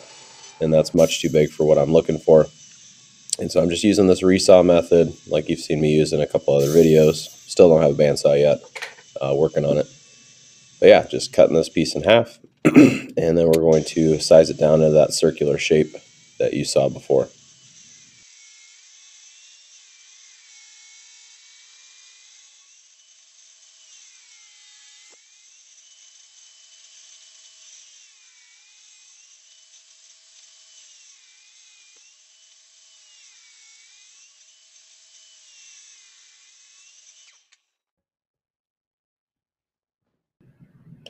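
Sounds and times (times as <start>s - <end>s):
table saw cutting wood: 0.0s - 37.6s.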